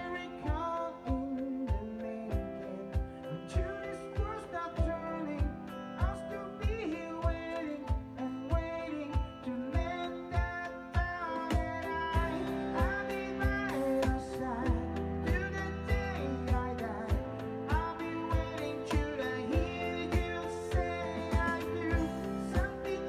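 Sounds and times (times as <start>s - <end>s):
electronic drum beat: 0.0s - 23.0s
woman singing: 0.0s - 23.0s.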